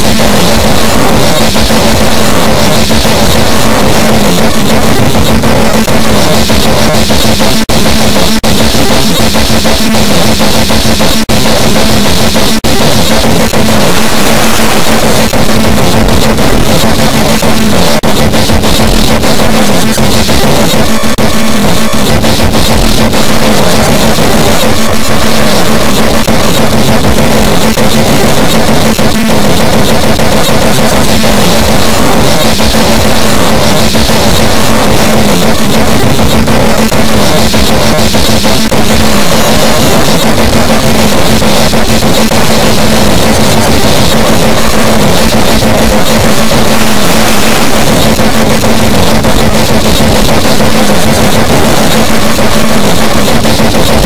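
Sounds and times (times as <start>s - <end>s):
loud dense noisy music: 0.0s - 54.0s.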